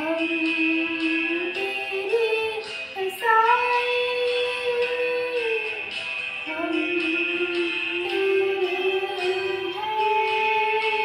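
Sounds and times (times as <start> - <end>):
girl singing devotional song: 0.0 - 11.0.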